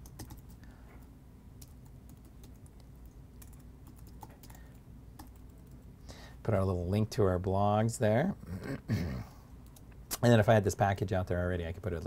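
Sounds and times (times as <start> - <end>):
typing on computer keyboard: 0.0 - 0.6, 1.6 - 5.8.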